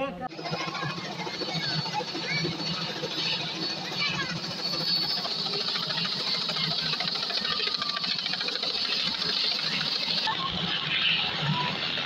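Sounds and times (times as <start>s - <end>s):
helicopter rotor beating: 0.2s - 12.0s.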